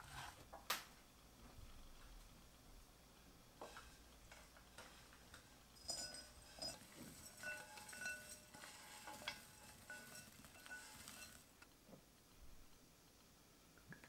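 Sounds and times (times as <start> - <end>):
oats and nuts pouring rattle: 4.8 - 11.5
glass bowl ringing: 5.8 - 11.4.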